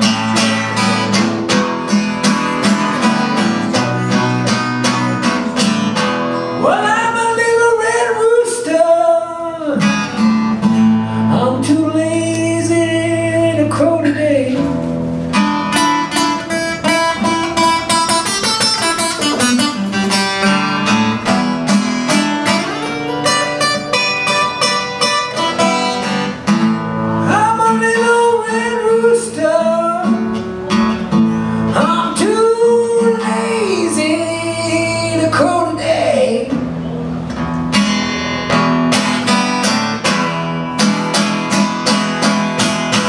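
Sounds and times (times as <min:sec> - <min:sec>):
acoustic guitar picking: 0:00.0 - 0:43.0
man singing: 0:06.6 - 0:10.2, 0:11.2 - 0:14.8, 0:27.2 - 0:30.3, 0:31.7 - 0:36.6.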